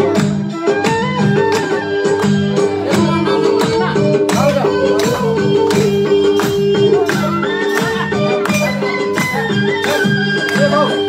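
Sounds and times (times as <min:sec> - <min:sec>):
music with percussive beat: 0:00.0 - 0:11.0.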